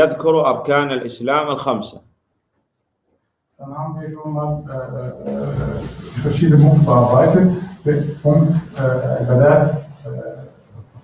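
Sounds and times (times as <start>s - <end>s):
man talking: 0.0s - 2.1s, 3.6s - 11.0s.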